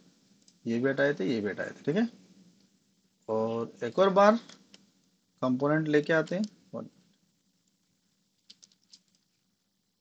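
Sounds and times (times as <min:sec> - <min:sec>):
faint mouse and keyboard clicks: 0:00.4 - 0:00.6, 0:08.4 - 0:09.4.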